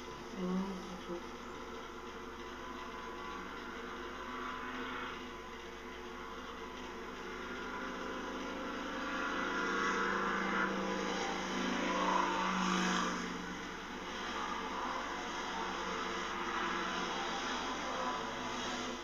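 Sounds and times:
mechanical motor hum: 0.0s - 19.0s.

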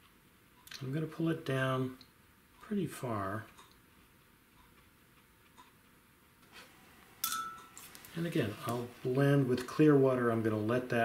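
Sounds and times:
paintbrush clinking water jar: 7.2s - 8.0s.

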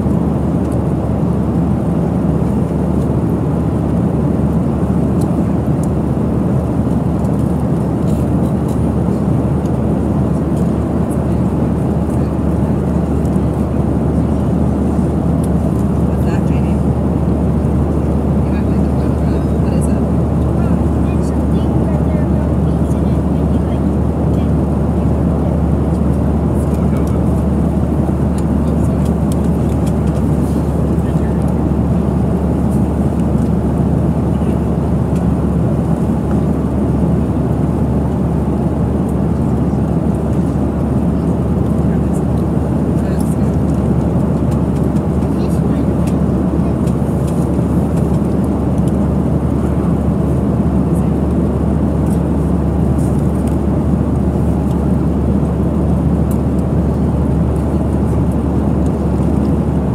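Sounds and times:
jet engines droning: 0.0s - 59.9s
rushing air in cabin: 0.0s - 59.9s.

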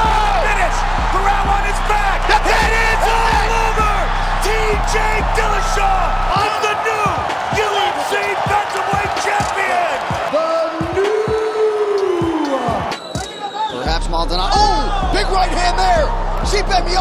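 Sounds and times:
commentator exclaiming: 0.0s - 12.7s
background music with bass beat: 0.0s - 17.0s
crowd cheering: 0.0s - 17.0s.

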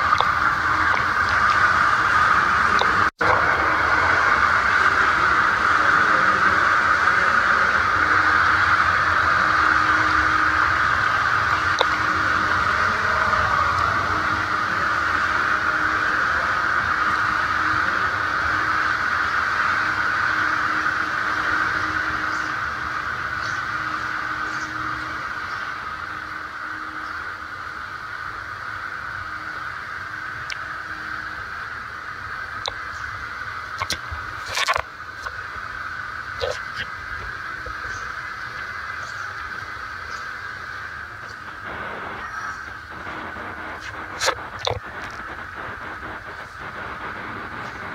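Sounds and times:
rushing water from pool jets: 0.0s - 47.9s.

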